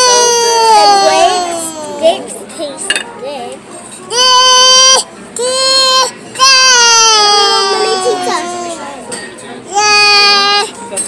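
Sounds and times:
small child crying: 0:00.0 - 0:02.2, 0:04.1 - 0:08.9.

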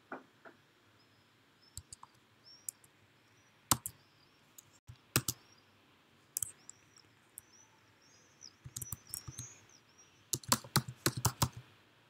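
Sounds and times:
typing on computer keyboard: 0:03.7 - 0:03.9, 0:05.2 - 0:05.4, 0:06.4 - 0:06.6, 0:08.7 - 0:09.5, 0:10.3 - 0:11.6.

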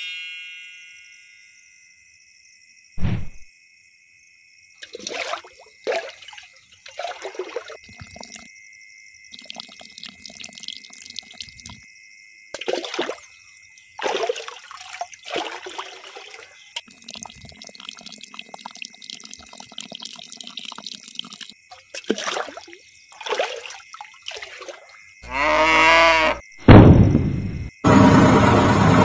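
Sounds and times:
water pouring onto sand: 0:04.8 - 0:08.4, 0:12.6 - 0:13.3, 0:14.0 - 0:24.9
water trickling: 0:04.8 - 0:11.9, 0:12.5 - 0:25.2
sudden loud burst: 0:26.6 - 0:29.0.

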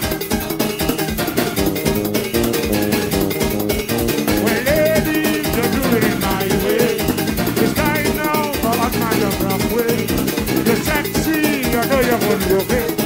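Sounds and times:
live soca band music: 0:00.0 - 0:13.0
wavering melodic lead line: 0:00.1 - 0:13.0.

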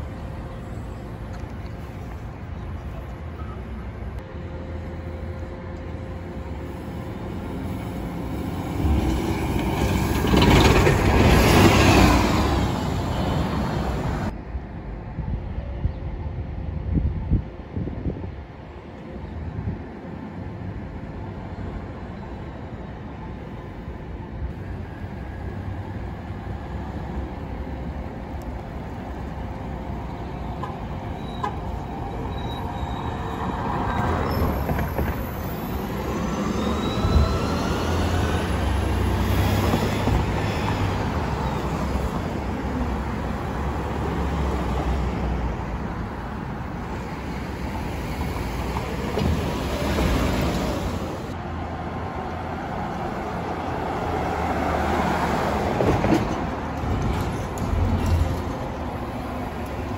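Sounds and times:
buses and traffic passing: 0:00.0 - 0:59.9.

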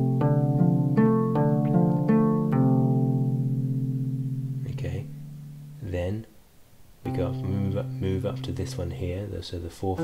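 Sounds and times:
plucked harp strings ringing: 0:00.0 - 0:05.8, 0:07.1 - 0:09.0.

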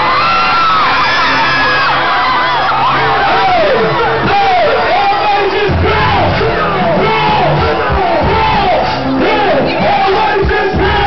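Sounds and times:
crowd screaming and cheering: 0:00.0 - 0:11.0
live r and b music over pa: 0:00.0 - 0:11.0.

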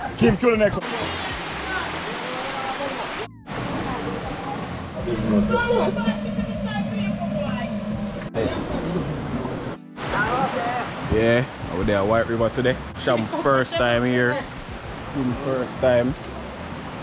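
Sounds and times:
river water rushing: 0:00.8 - 0:17.0
people talking and laughing: 0:13.0 - 0:15.4.

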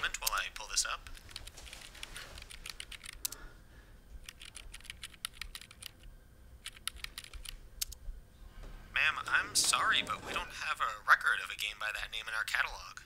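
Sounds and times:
faint keyboard typing: 0:00.0 - 0:03.5, 0:04.2 - 0:08.0.

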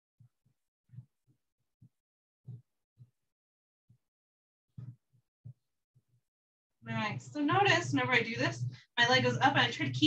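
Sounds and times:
woman speaking: 0:06.9 - 0:10.0.

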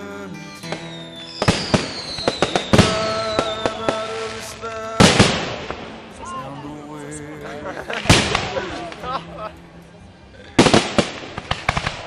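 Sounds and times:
fireworks banging and crackling: 0:00.6 - 0:06.2, 0:07.8 - 0:09.2, 0:10.6 - 0:12.0.

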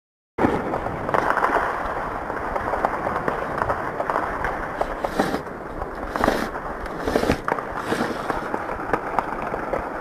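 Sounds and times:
rough muffled noise: 0:04.6 - 0:09.6.

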